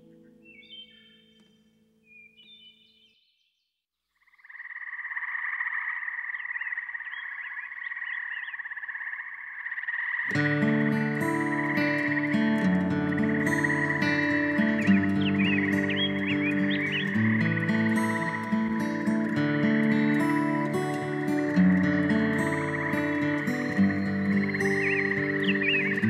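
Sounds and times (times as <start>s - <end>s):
guitar-led new-age music: 0.0s - 2.0s, 10.3s - 26.0s
frogs trilling in chorus: 4.2s - 26.0s.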